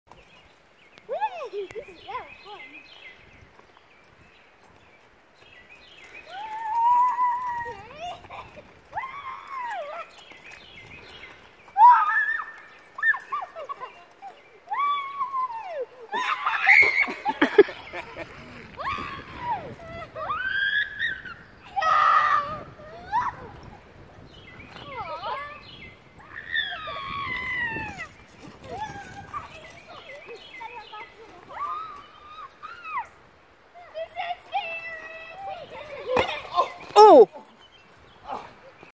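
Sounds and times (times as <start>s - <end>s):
children squealing: 6.3s - 10.2s, 11.7s - 23.7s, 26.2s - 30.0s, 31.4s - 34.0s, 34.6s - 37.3s
child calling: 37.0s - 37.3s
child squealing: 37.0s - 37.3s.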